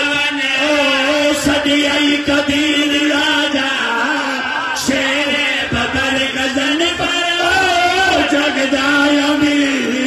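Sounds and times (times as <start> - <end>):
man chanting over loudspeakers: 0.0 - 10.0.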